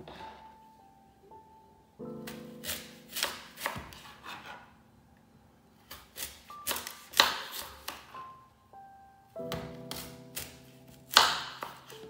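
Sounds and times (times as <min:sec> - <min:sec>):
knife cutting on board: 0:02.3 - 0:04.6, 0:09.9 - 0:12.0.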